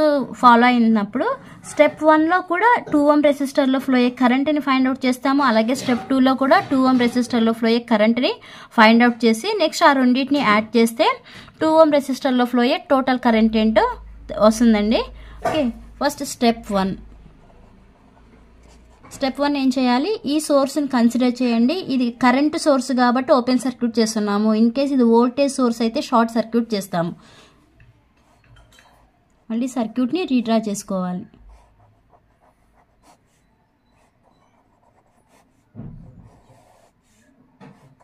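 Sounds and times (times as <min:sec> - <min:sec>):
pen scratching on paper: 0:18.6 - 0:19.4, 0:31.4 - 0:38.0.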